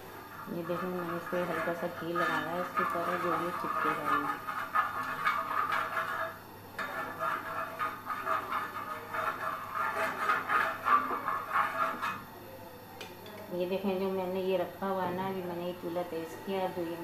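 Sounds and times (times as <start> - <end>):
spoon scraping hot iron griddle: 0.0 - 12.3.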